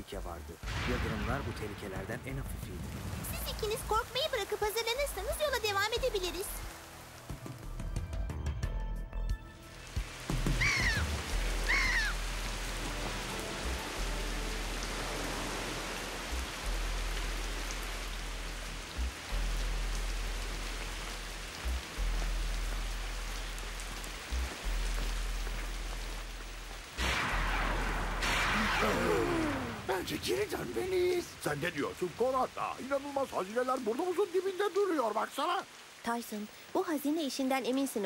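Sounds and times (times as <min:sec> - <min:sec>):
heavy rain pouring: 0:00.0 - 0:08.3, 0:09.5 - 0:38.0
low storm rumble: 0:00.5 - 0:07.0, 0:10.1 - 0:33.5
gull cries: 0:10.5 - 0:12.3.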